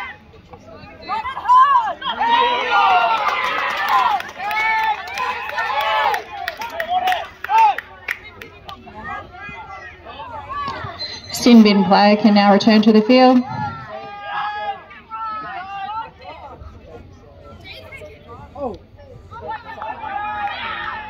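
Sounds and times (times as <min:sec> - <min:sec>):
people shouting: 0:13.4 - 0:16.2, 0:19.4 - 0:21.0.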